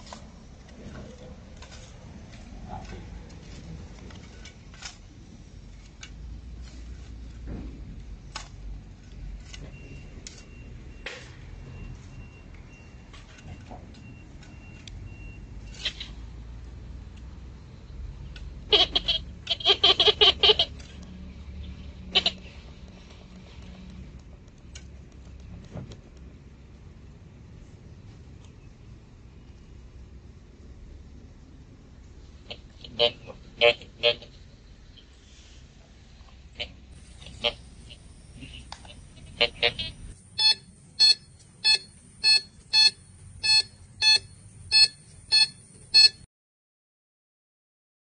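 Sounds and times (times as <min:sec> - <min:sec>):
metal detector tone: 0:37.0 - 0:46.2.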